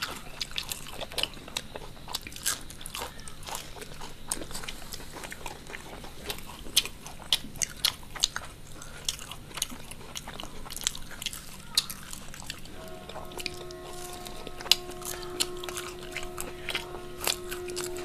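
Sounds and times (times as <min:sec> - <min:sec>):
crunching crisp snacks: 0:00.0 - 0:12.8.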